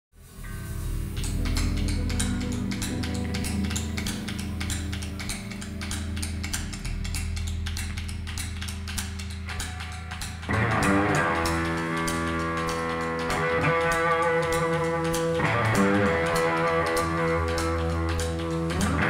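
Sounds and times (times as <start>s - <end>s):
ticking percussion: 0.9s - 19.0s.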